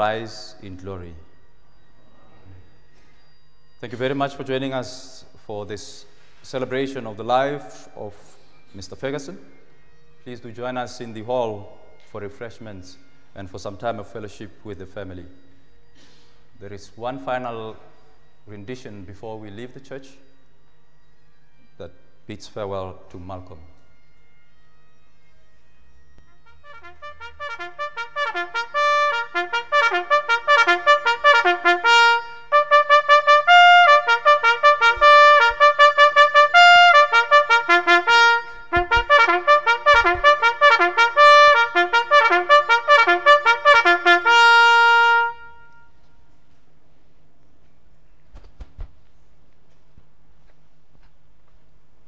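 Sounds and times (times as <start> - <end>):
solo trumpet tune: 26.0 - 46.3.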